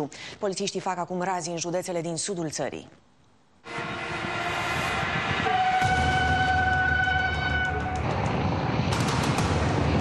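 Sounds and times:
train rumbling on tracks: 0:03.8 - 0:10.0.

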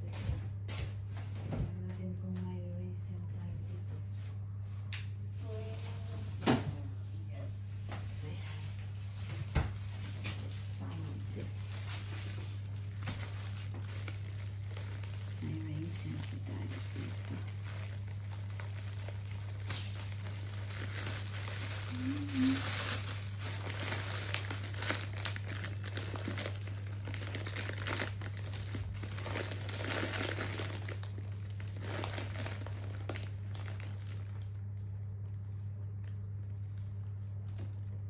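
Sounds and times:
steady low hum: 0:00.0 - 0:38.0
plastic packaging crinkling: 0:09.9 - 0:38.0.

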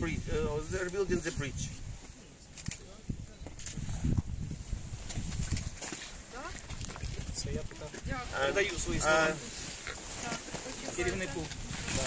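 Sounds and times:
microphone handling rumble and knocks: 0:03.1 - 0:06.0.

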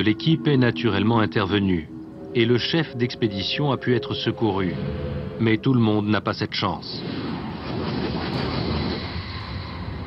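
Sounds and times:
steady rushing rumble: 0:00.0 - 0:10.0.

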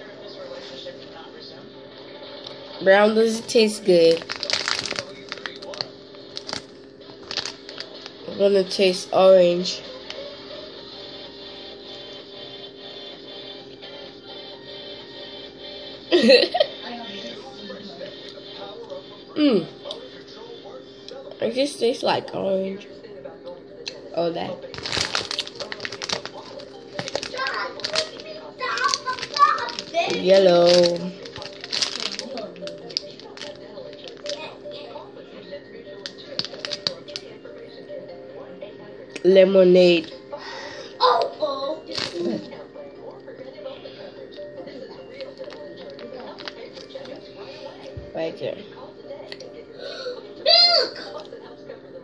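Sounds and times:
plastic candy packet crinkling: 0:03.2 - 0:09.0, 0:24.6 - 0:34.7, 0:36.0 - 0:37.4, 0:41.9 - 0:42.5, 0:45.1 - 0:47.2.

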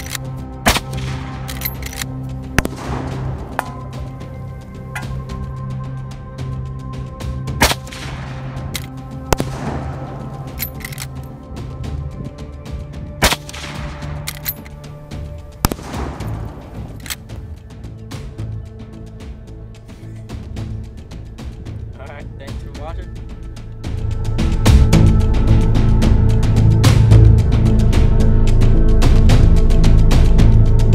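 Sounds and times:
background music: 0:00.0 - 0:30.9
rifle shots echoing: 0:02.6 - 0:04.1, 0:07.6 - 0:11.1, 0:13.2 - 0:14.6, 0:15.6 - 0:17.2.

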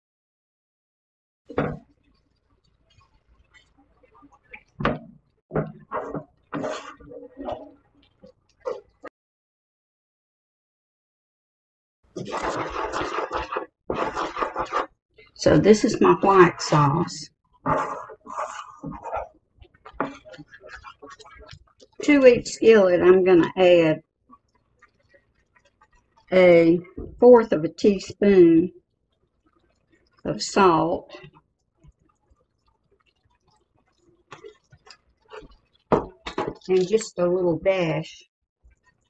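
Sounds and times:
wooden spoon scraping skillet: 0:05.8 - 0:07.8, 0:12.2 - 0:14.9, 0:17.6 - 0:22.2.

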